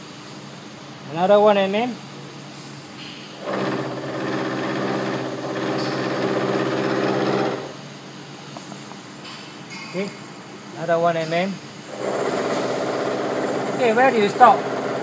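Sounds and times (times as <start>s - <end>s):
spindle running: 3.4s - 7.8s, 11.9s - 15.0s.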